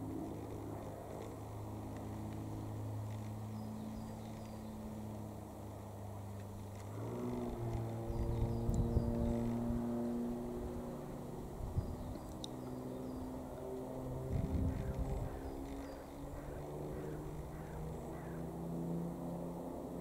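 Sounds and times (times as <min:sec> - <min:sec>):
propeller plane engine droning: 0:00.0 - 0:20.0.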